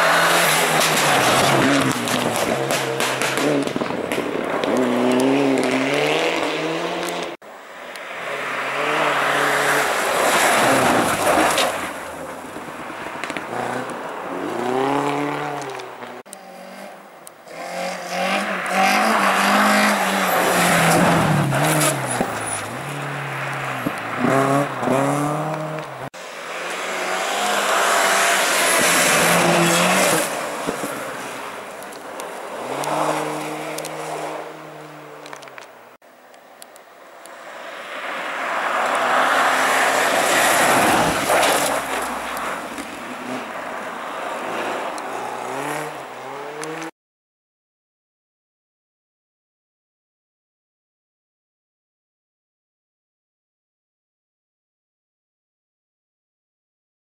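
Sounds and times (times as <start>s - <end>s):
rally car engines passing at speed: 0.0s - 7.4s, 8.0s - 35.4s, 37.4s - 46.9s.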